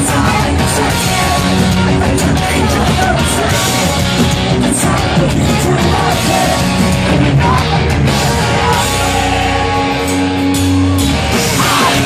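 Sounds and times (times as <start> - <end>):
live pop-punk band: 0.0 - 12.0.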